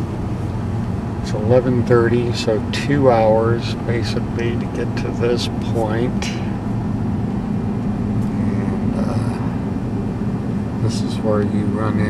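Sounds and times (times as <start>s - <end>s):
tyres on road: 0.0s - 12.0s
vehicle engine rumble: 0.0s - 12.0s.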